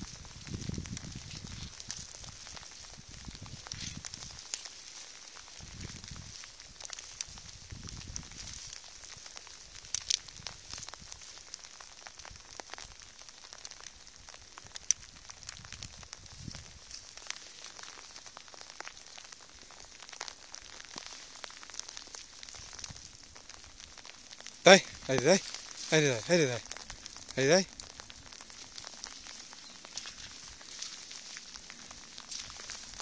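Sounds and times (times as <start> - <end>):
footsteps through wet grass and brush: 0.0 - 33.0.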